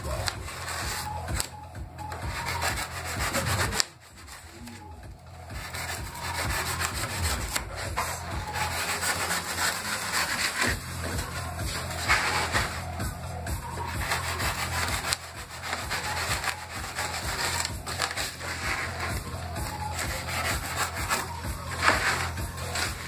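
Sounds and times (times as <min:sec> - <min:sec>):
tool scraping polystyrene: 0:00.0 - 0:13.0, 0:13.6 - 0:23.0.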